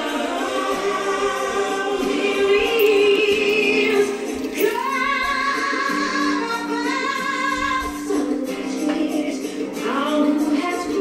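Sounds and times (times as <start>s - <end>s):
choir singing in harmony: 0.0s - 7.4s.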